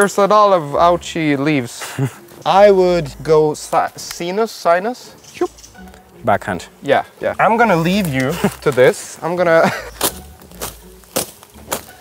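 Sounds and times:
footsteps cracking twigs: 0:05.2 - 0:06.2, 0:07.3 - 0:12.0.

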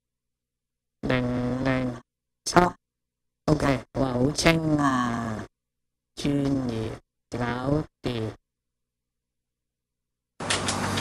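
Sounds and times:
buzzy voice-like tone: 0:01.0 - 0:02.8, 0:03.5 - 0:05.5, 0:06.2 - 0:08.4.

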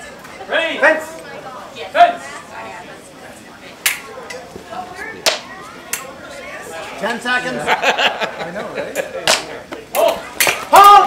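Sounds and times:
loud shout: 0:10.0 - 0:11.0.

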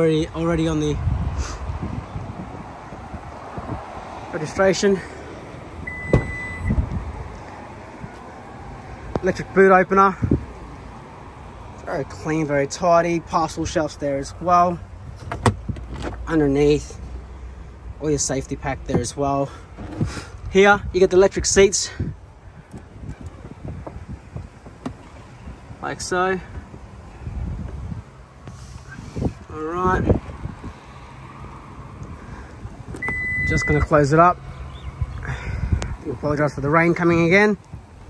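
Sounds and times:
wind rumble on microphone: 0:00.3 - 0:04.6, 0:05.3 - 0:11.7, 0:19.8 - 0:25.8, 0:26.5 - 0:31.0, 0:34.7 - 0:38.0
steady beep: 0:05.9 - 0:06.8, 0:33.0 - 0:33.9
tailgate latch thump: 0:06.0 - 0:06.5.

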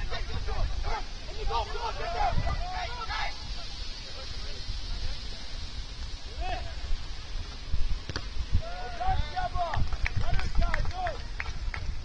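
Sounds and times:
players shouting: 0:00.0 - 0:03.9, 0:08.6 - 0:11.2.

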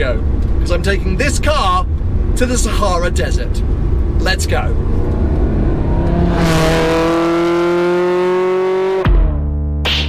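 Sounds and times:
car engine accelerating: 0:00.2 - 0:09.6.

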